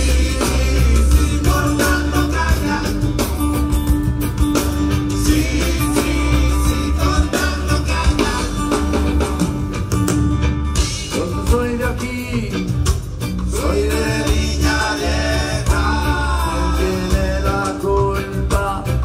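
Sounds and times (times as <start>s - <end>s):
heavy bass line: 0.0s - 19.0s
live rock band playing: 0.0s - 19.0s
person singing: 5.2s - 9.1s.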